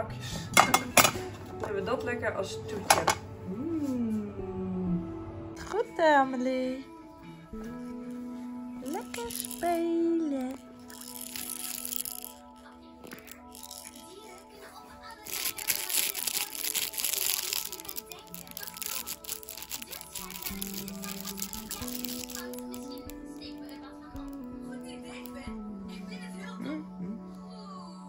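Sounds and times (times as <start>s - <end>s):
background music: 0.0s - 28.0s
cloth book crinkling: 8.8s - 9.8s, 10.4s - 25.4s
plastic rattle toy rattling: 8.9s - 9.8s, 10.4s - 14.6s, 15.2s - 25.4s.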